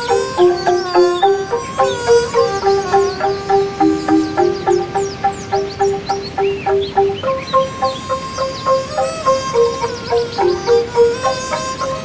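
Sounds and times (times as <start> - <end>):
bamboo tubes shaken melody: 0.0 - 12.0
birds chirping: 0.0 - 12.0
steady hiss: 0.0 - 12.0.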